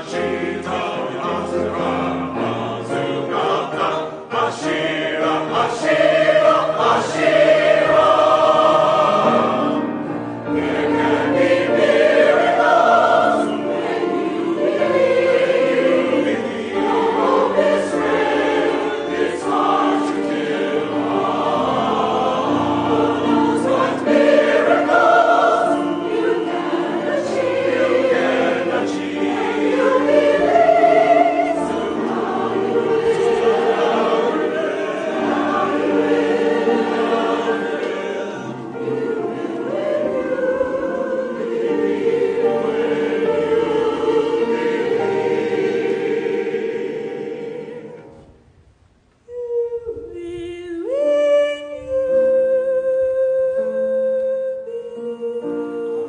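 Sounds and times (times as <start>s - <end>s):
mixed choir singing: 0.0s - 48.4s, 49.7s - 56.0s
piano accompaniment: 0.0s - 48.5s.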